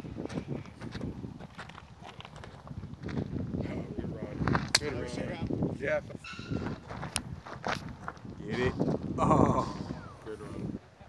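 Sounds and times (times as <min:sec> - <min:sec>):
footsteps on gravel: 0:00.2 - 0:03.6, 0:04.3 - 0:04.7, 0:06.6 - 0:09.0
people talking in low voices: 0:03.4 - 0:06.2, 0:08.2 - 0:11.0.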